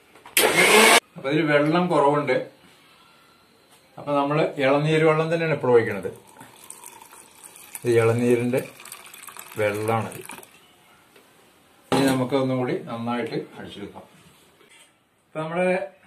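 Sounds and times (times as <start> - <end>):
liquid trickling and splashing: 6.1 - 10.6
man speaking: 9.6 - 10.3.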